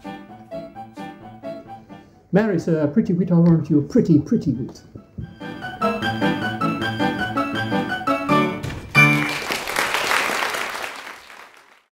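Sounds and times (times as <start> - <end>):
song accompaniment final chord: 5.3 - 9.4
applause: 9.0 - 11.9.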